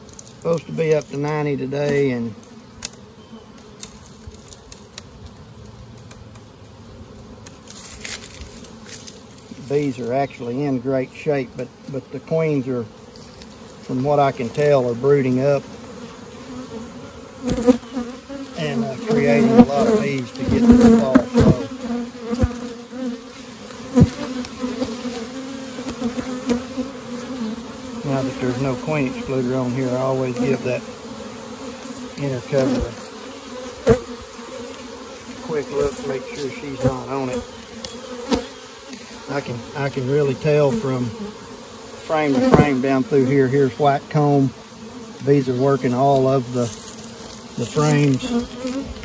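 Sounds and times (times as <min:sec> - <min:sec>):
hive tool scraping wooden cover: 0:00.0 - 0:05.1, 0:07.2 - 0:49.0
honeybees buzzing: 0:00.0 - 0:49.0.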